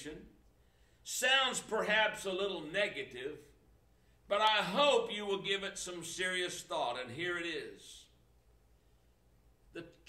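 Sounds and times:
man speaking: 1.1s - 3.6s, 4.3s - 8.2s, 9.7s - 10.0s.

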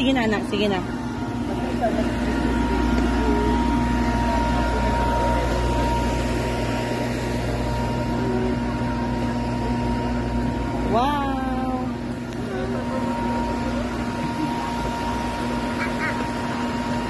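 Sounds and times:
electric blower fan humming: 0.0s - 17.0s.

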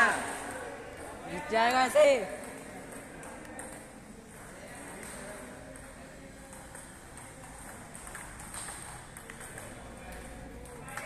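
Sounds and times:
table tennis ball clicks: 4.9s - 11.0s.

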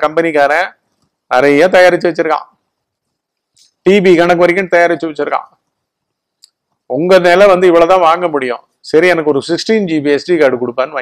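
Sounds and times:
man speaking: 0.0s - 2.6s, 3.6s - 5.6s, 6.9s - 11.0s.

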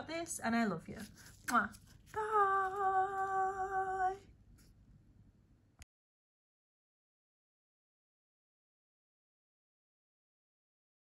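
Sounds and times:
woman singing a held note: 2.2s - 4.3s.

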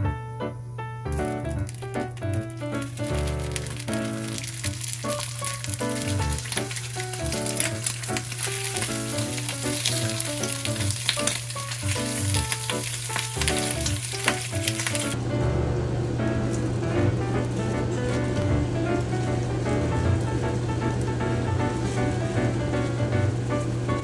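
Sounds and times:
soft background music: 0.0s - 24.0s
crackles and pops: 1.1s - 15.2s
ham sizzling in frying pan: 1.1s - 15.2s, 18.4s - 24.0s.

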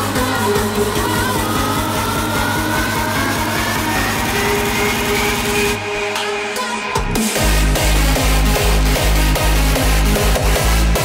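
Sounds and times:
rising synth tone: 0.0s - 6.2s.

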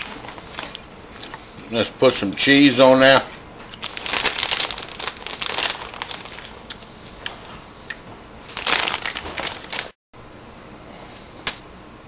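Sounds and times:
plastic bag crinkling: 0.0s - 0.8s, 3.8s - 6.7s, 8.5s - 10.0s.

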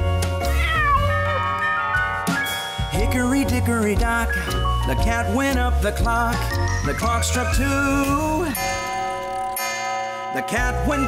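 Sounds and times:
song backing music: 0.0s - 9.6s
cartoon kitten meowing: 0.4s - 2.7s.

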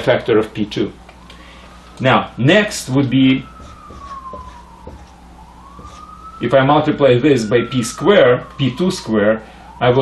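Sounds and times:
siren wailing: 0.8s - 10.0s
marker tapping on whiteboard: 3.6s - 5.1s.

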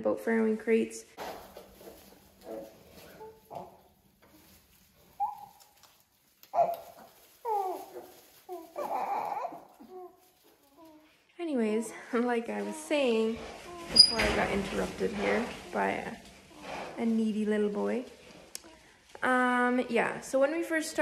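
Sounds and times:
whining whimpering cries: 6.6s - 11.0s.

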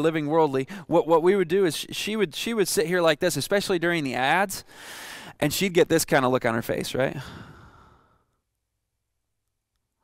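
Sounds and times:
man sighing: 7.2s - 8.2s.

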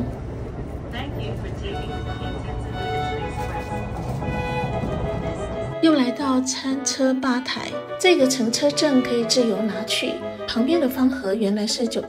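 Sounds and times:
electric train rumble inside cabin: 0.0s - 12.0s.

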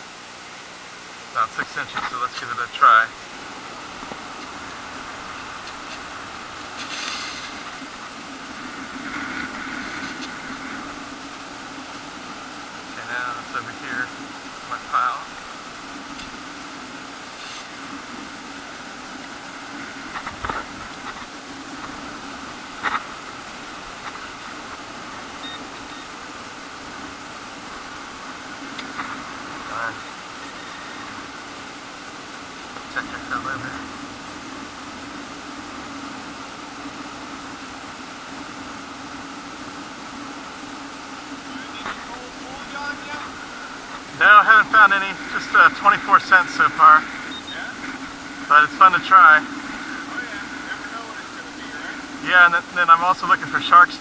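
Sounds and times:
steady background hiss: 0.0s - 54.0s
shovel scraping sand: 6.8s - 7.6s.

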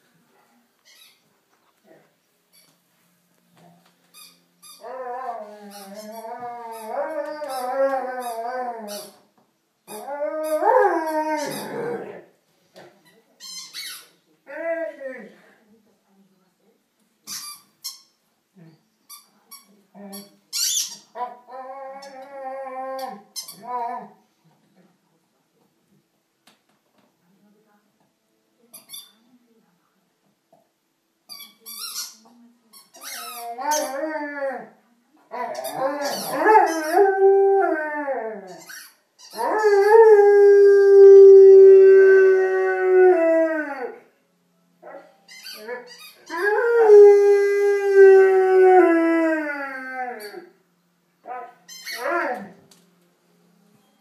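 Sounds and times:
dog howling: 9.9s - 12.1s
dog whining: 9.9s - 12.1s, 35.3s - 37.2s.

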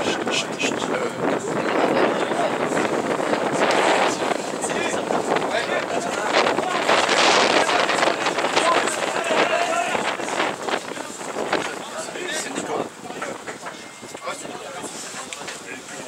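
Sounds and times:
wind buffeting microphone: 0.0s - 16.0s
spectators and players calling out: 3.5s - 14.5s.

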